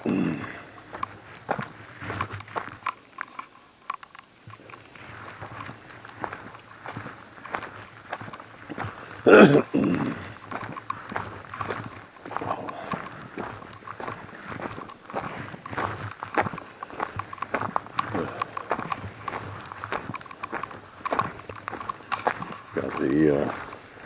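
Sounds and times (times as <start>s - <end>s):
footsteps on frozen gravel: 0.0s - 24.0s.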